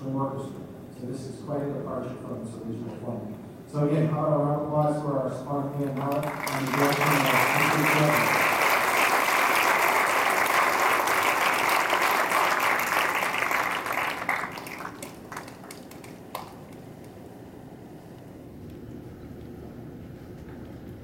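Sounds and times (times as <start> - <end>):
audience applause: 5.8 - 16.8.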